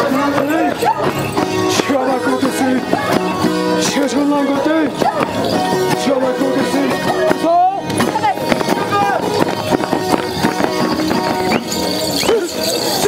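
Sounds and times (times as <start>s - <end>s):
feet stamping: 0.0s - 13.0s
people singing and shouting: 0.0s - 13.0s.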